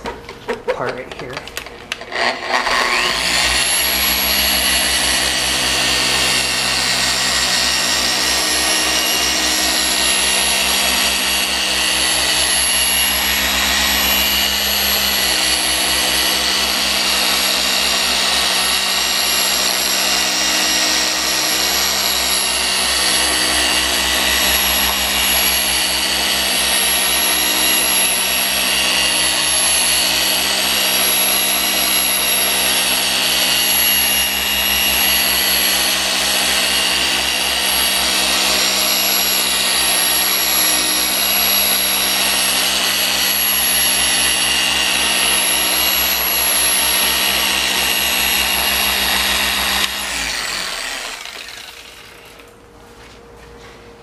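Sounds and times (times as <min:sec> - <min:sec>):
polisher motor whine: 0:01.9 - 0:52.6.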